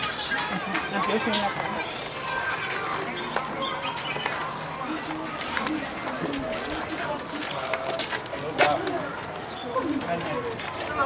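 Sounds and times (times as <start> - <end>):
street background noise: 0.0 - 11.0.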